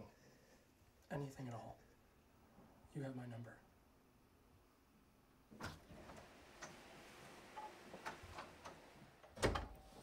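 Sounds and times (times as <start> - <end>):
door shutting with a thud: 9.3 - 9.8.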